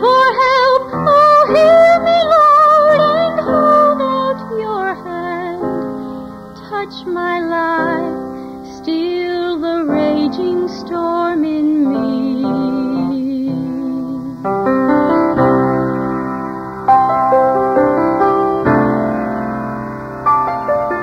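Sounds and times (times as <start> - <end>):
woman singing: 0.0 - 6.0, 6.6 - 14.5
piano accompaniment: 0.0 - 21.0.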